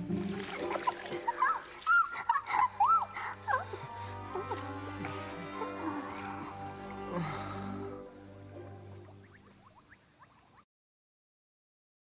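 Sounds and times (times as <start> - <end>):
quiet background music: 0.0 - 10.1
woman giggling squeals: 1.3 - 3.6.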